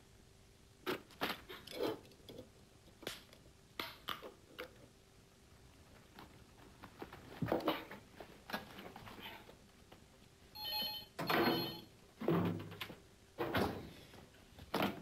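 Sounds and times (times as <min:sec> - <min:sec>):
telephone ringing: 0:10.6 - 0:11.9
knocks and clatter of handling: 0:11.2 - 0:14.0, 0:14.6 - 0:15.0.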